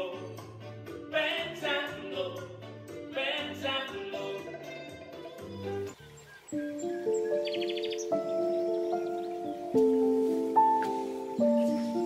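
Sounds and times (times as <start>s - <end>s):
backing music with bass line: 0.0s - 6.0s
man singing operatically: 1.0s - 4.6s.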